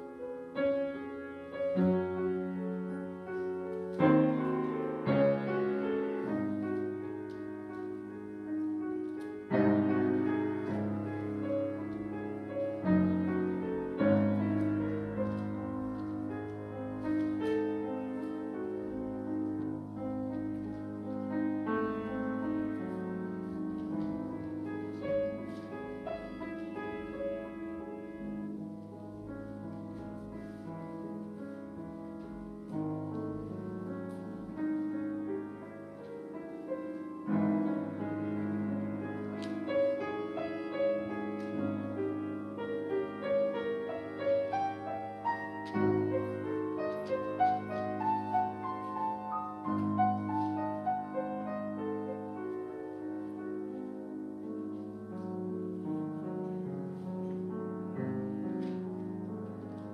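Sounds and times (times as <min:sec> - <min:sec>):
piano chords: 0:00.0 - 0:59.9.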